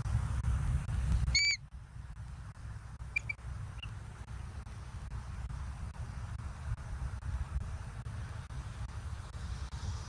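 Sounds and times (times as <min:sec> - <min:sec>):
low rumble: 0:00.0 - 0:10.0
bird chirp: 0:01.3 - 0:01.6, 0:03.1 - 0:03.9
faint short peeps: 0:01.3 - 0:01.6, 0:03.2 - 0:03.9.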